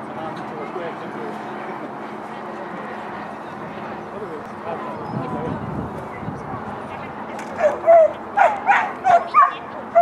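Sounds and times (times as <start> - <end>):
steady outdoor noise: 0.0 - 10.0.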